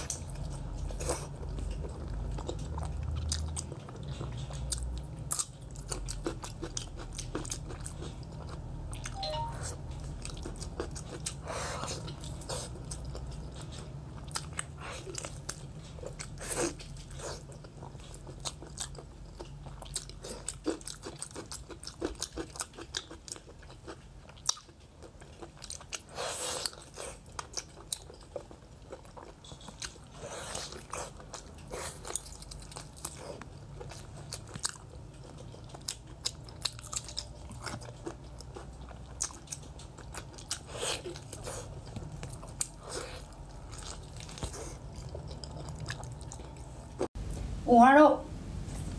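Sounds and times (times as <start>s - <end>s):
wet chewing and biting: 0.0s - 47.1s.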